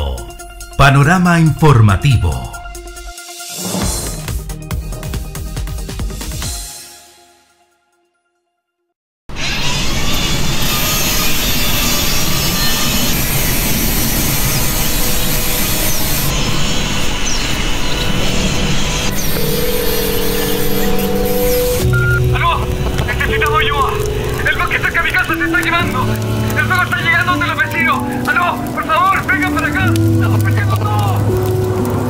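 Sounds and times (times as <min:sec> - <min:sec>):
person speaking over music: 0:00.0 - 0:02.7, 0:22.2 - 0:31.4
sustained music notes: 0:18.1 - 0:32.0.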